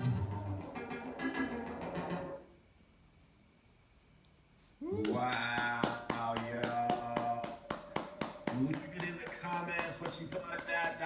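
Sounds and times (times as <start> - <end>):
hand clapping: 4.8 - 11.0
person cheering woo: 4.8 - 11.0.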